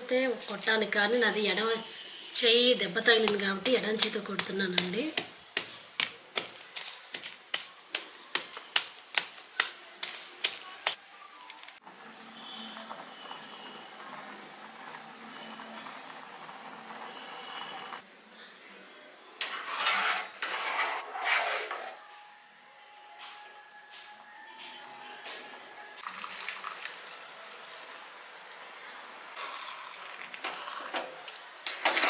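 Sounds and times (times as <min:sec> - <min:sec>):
milk heating hiss: 0:12.0 - 0:18.8, 0:29.4 - 0:31.4
spoon scraping and stirring pot: 0:19.4 - 0:22.0.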